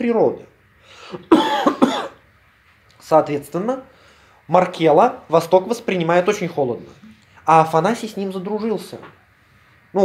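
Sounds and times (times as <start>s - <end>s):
man coughing: 1.1s - 2.2s.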